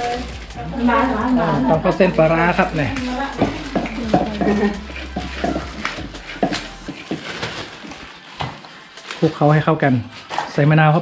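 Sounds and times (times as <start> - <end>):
spoon and pestle knocking in mortar: 3.3 - 7.2.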